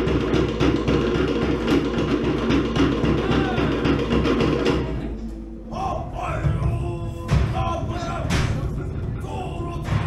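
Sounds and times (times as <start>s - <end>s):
deep drum beat: 0.0s - 5.1s, 6.1s - 10.0s
wooden slit drums playing fast rhythm: 0.0s - 5.1s, 6.4s - 10.0s.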